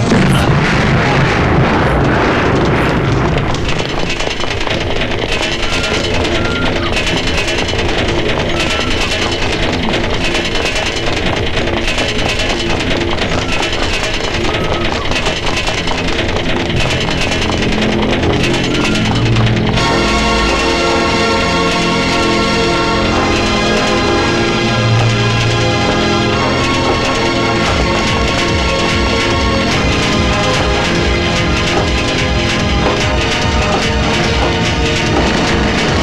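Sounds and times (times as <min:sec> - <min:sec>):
loud rushing swell: 0:00.0 - 0:04.0
tense action film score: 0:00.0 - 0:36.0.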